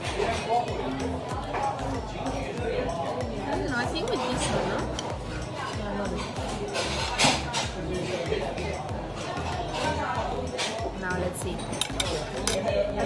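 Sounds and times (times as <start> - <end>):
chopsticks clinking on porcelain: 11.6 - 12.7.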